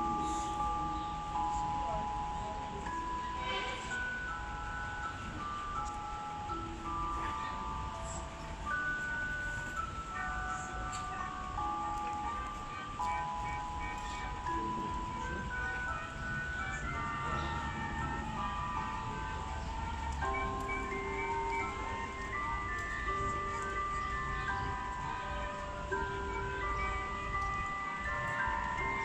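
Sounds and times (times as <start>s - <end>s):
low crowd murmur: 0.0s - 29.0s
slow chime-like melody: 0.0s - 29.0s.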